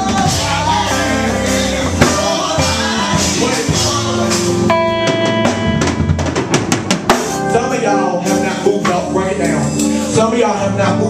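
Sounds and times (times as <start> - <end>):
live band playing: 0.0 - 11.0
drum fill: 1.8 - 7.6.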